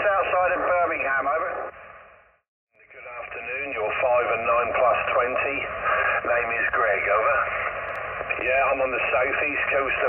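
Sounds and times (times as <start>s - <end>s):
shortwave radio voice: 0.0s - 1.7s, 2.8s - 10.0s.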